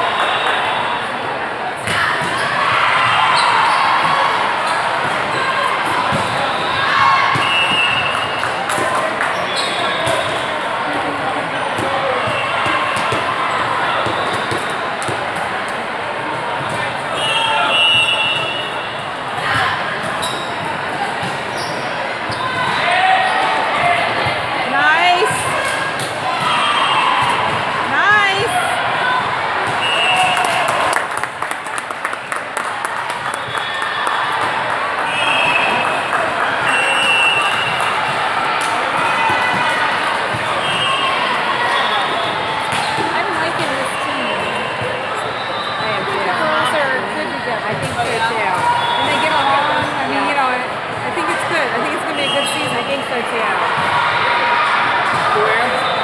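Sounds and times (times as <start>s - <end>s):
shoes squeaking on floor: 9.4s - 10.4s, 20.1s - 20.6s
people calling out: 27.9s - 29.0s.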